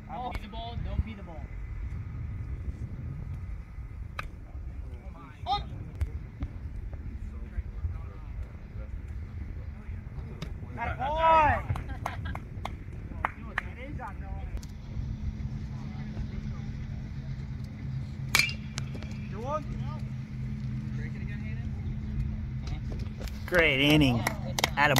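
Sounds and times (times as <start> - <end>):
steady low hum: 0.0 - 24.9
baseball bat hitting ball: 18.3 - 19.4.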